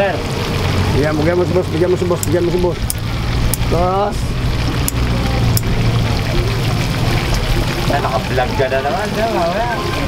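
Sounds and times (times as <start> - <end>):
chicken sizzling in hot oil: 0.0 - 10.0.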